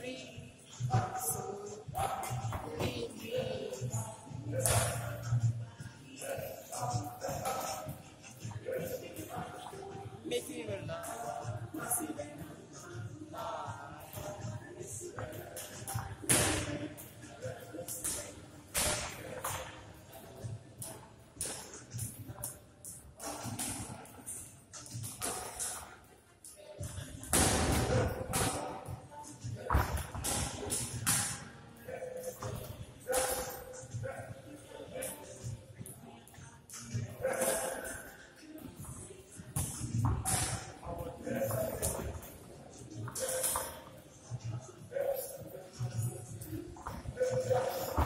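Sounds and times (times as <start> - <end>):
background voices: 0.0 - 48.0.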